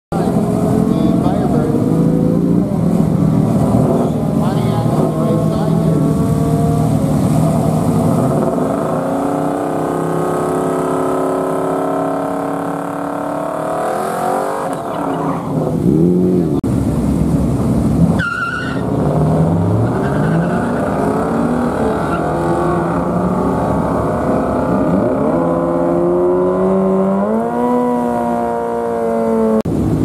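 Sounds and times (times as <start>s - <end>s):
car engine revving: 0.1s - 30.0s.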